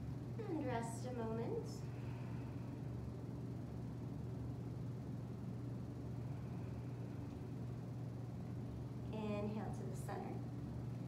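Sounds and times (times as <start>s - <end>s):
electric fans running: 0.0s - 11.0s.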